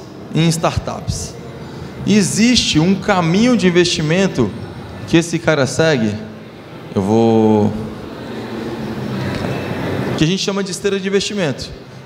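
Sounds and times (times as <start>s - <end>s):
convention hall din: 0.0s - 12.0s.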